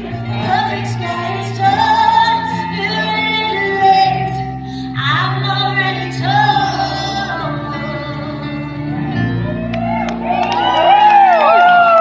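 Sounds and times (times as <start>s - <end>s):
woman singing pop ballad: 0.0s - 9.2s
keyboard chords: 0.0s - 12.0s.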